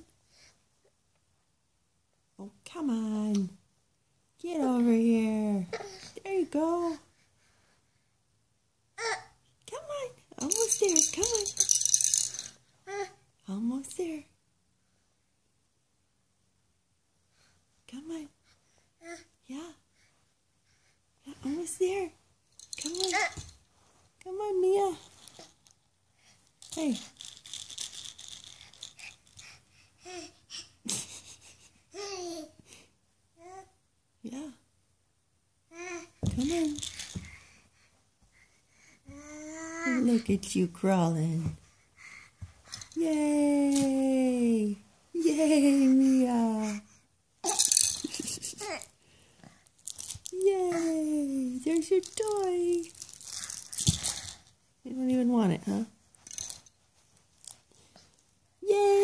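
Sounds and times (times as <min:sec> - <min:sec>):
soft toy rustling: 0:49.5 - 0:58.5
rustling and clicking: 0:49.6 - 0:50.4, 0:51.8 - 0:54.6.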